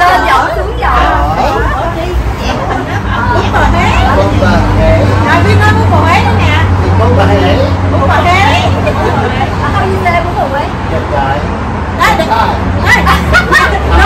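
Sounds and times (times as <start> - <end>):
people talking over each other: 0.0 - 14.0
road traffic rumble: 0.0 - 14.0.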